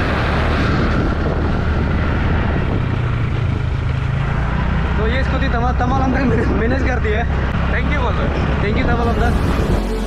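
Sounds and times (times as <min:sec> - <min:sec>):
wind buffeting microphone: 0:00.0 - 0:04.2.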